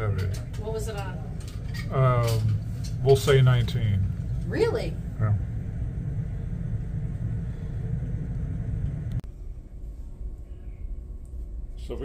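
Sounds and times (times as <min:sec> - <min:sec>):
low rumbling cabin hum: 0:00.0 - 0:12.0.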